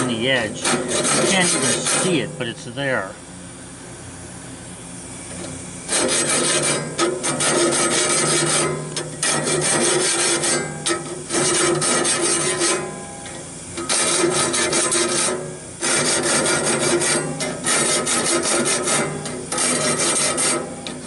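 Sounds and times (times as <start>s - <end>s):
file rasping on saw blade: 0.0s - 2.3s, 5.9s - 13.0s, 13.8s - 21.0s.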